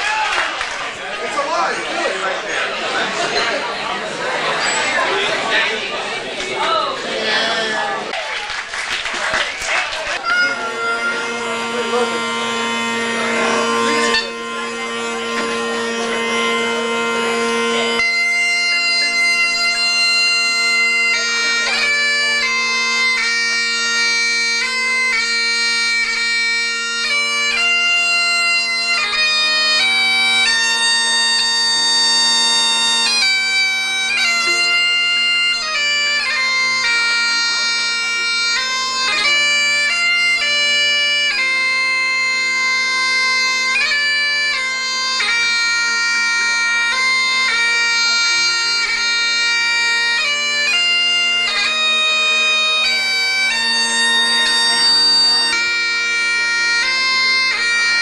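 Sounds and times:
bagpipe chanter tune: 10.1s - 58.0s
bagpipe drones: 10.1s - 58.0s.

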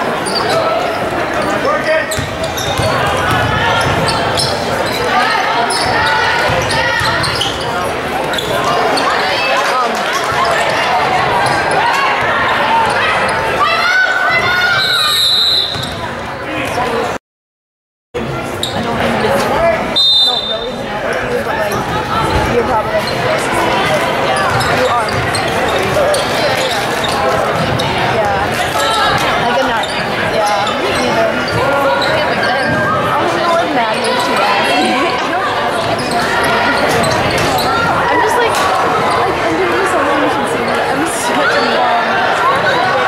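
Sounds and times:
crowd chatter and calls: 0.0s - 17.2s, 18.2s - 43.0s.

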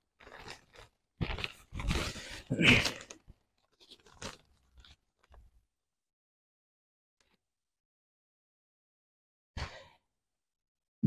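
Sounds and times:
paper rustling: 0.2s - 5.6s.

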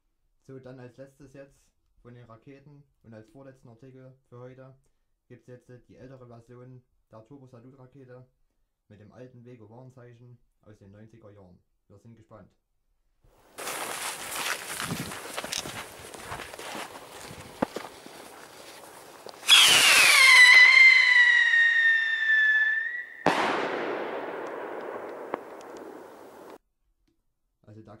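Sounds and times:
firework crackling and spitting: 17.1s - 26.6s
rocket whistle falling in pitch: 19.2s - 26.6s
loud firework bang: 19.4s - 26.6s.

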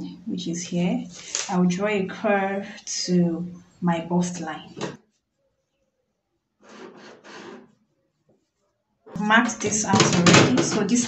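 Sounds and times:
pen drawing on paper: 6.6s - 7.8s.

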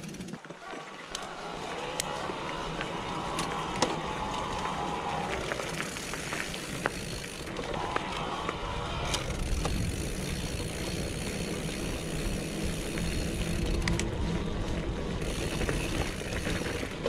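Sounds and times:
bike tyres on gravel: 0.0s - 17.0s.

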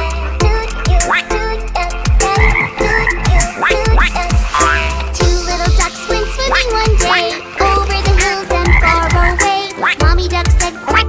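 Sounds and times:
upbeat children's song backing: 0.0s - 11.0s
cartoon frog croaking: 2.2s - 10.1s.

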